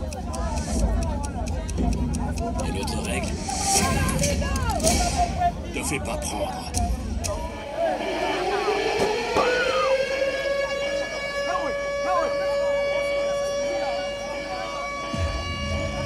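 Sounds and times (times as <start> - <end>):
siren wail over speakers: 7.4 - 16.0.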